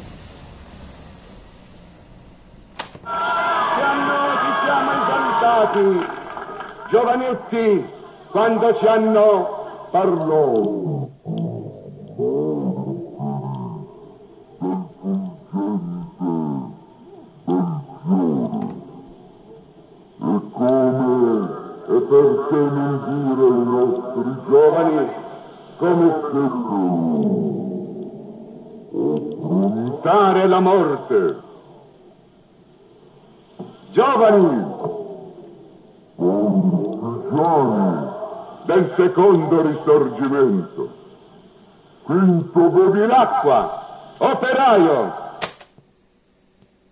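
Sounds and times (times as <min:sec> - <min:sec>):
slowed-down speech from cassette: 0:04.6 - 0:14.0, 0:14.6 - 0:19.2, 0:20.2 - 0:28.0, 0:28.9 - 0:31.5, 0:36.2 - 0:41.0.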